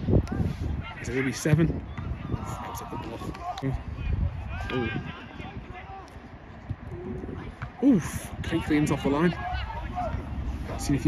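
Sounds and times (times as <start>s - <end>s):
wind rumble on microphone: 0.0s - 11.0s
faint shouting voices: 0.1s - 11.0s.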